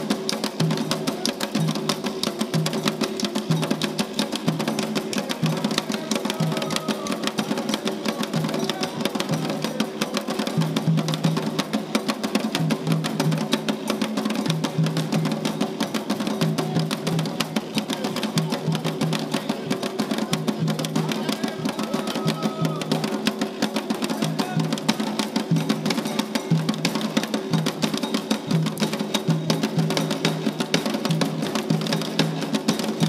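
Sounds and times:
fast hand drumming: 0.0s - 33.0s.

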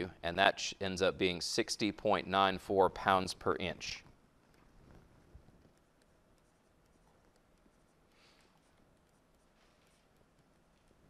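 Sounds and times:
pen scratching while writing: 4.5s - 11.0s.

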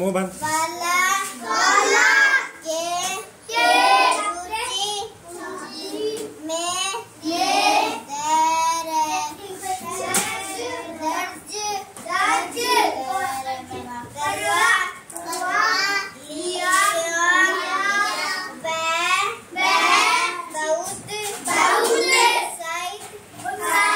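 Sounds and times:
girl reading aloud sing-song: 0.4s - 23.9s.

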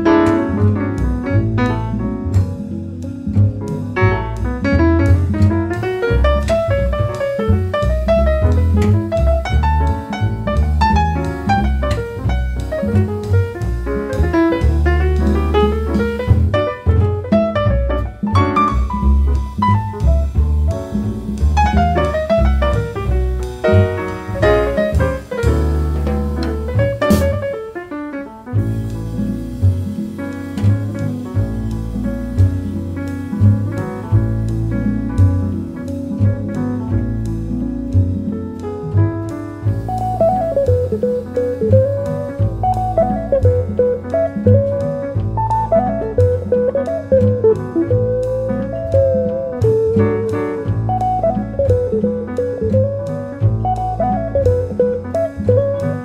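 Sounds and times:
double bass line: 0.0s - 56.0s
drums: 0.0s - 56.0s
piano: 0.0s - 56.0s.

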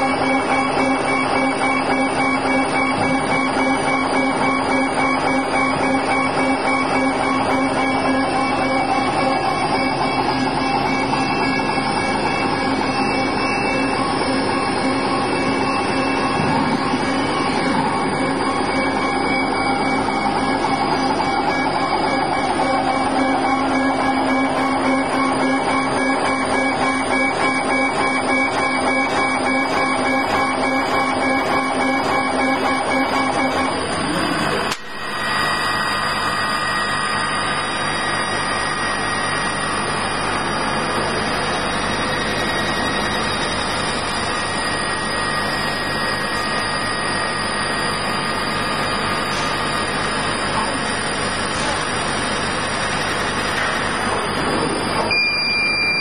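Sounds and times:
laser cutter humming and whirring: 0.0s - 56.0s.

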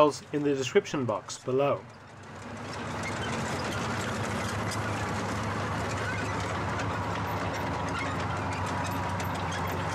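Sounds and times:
tank engines droning: 0.0s - 9.9s
tank tracks clanking: 1.8s - 9.9s.

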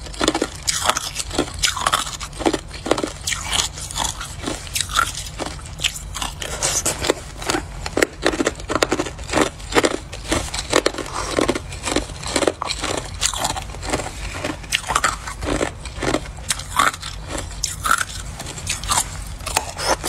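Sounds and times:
ice being chewed: 0.0s - 20.0s.

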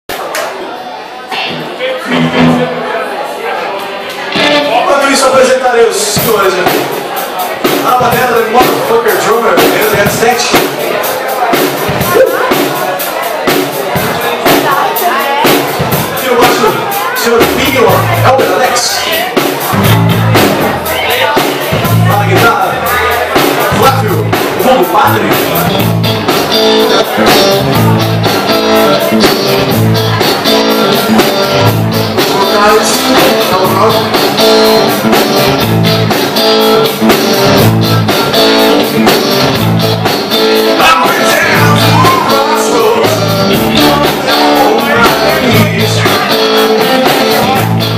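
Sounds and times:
electric guitars: 1.3s - 2.9s, 4.1s - 47.9s
blues rock band playing: 1.3s - 3.3s, 4.1s - 47.9s
drum kit steady beat: 1.4s - 2.8s, 4.3s - 47.9s
bass guitar: 1.4s - 2.9s, 4.3s - 47.9s.

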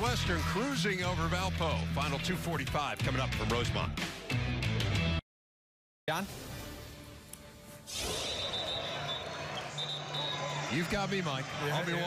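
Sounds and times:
basketball court noise: 7.9s - 12.0s.

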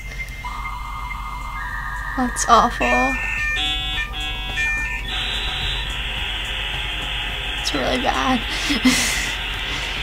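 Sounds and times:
dial-up modem tones and screeches: 0.4s - 5.9s
girl speaking: 2.2s - 3.2s.

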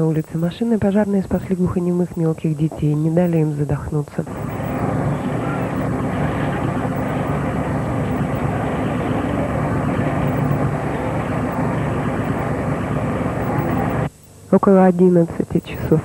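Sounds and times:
engine rumble: 0.0s - 14.1s.

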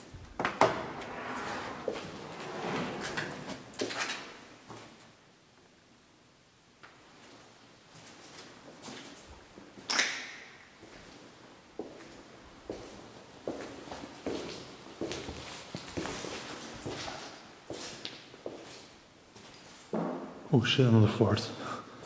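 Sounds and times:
footsteps on hard floor: 1.7s - 2.4s.

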